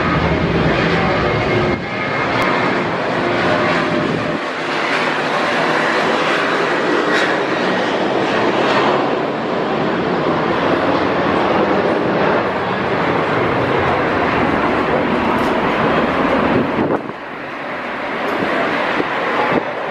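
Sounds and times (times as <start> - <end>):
jet engines at high thrust: 0.0 - 19.9.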